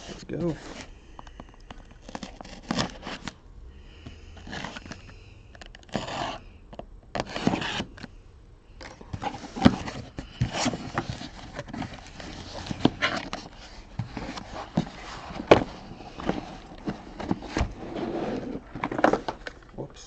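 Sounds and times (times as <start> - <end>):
cardboard scraping and tearing: 2.0 - 3.3, 5.8 - 6.4, 7.2 - 8.0, 9.1 - 19.4.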